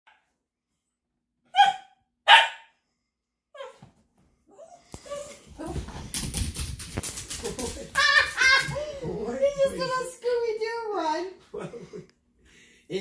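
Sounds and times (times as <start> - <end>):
small dog barking: 1.5 - 2.7
dogs scuffling on couch: 5.0 - 9.9.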